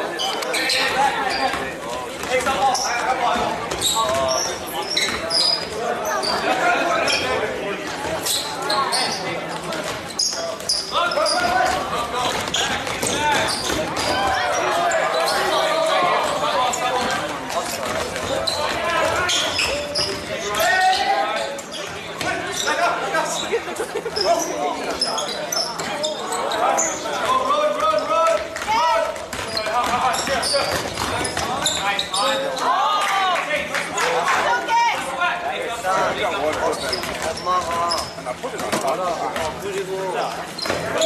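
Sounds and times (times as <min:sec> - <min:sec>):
sneaker squeaks: 0:00.0 - 0:32.8, 0:36.4 - 0:38.8, 0:40.3 - 0:41.0
ball bouncing on hardwood court: 0:28.3 - 0:31.7.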